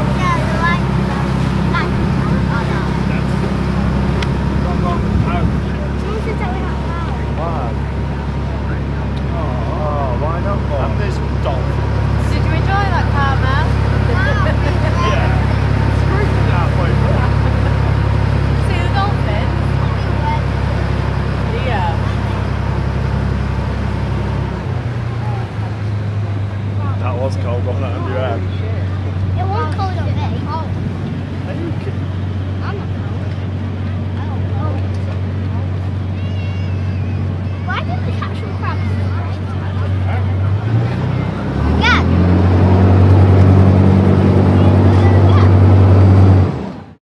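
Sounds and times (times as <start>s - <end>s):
speedboat engine droning: 0.0s - 47.0s.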